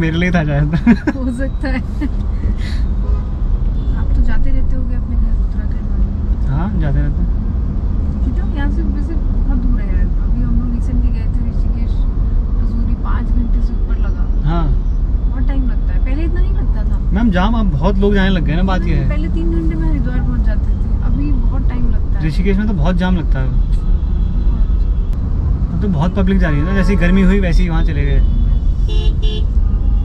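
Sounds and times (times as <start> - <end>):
car engine and tyres rumble: 0.0 - 30.0.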